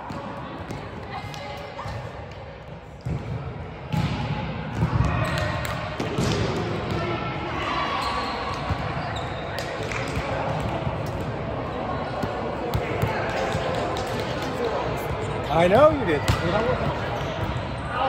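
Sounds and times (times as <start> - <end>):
chatter of many voices: 0.0 - 18.0.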